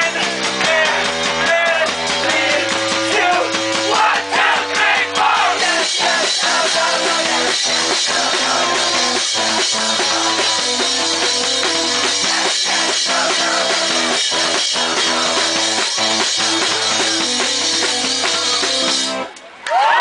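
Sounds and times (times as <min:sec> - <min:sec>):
electric keyboard chords: 0:00.0 - 0:19.3
rock drum kit: 0:00.0 - 0:19.3.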